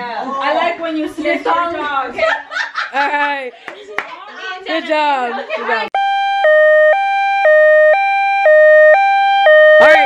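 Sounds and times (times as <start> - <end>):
two-tone siren: 6.0 - 10.0.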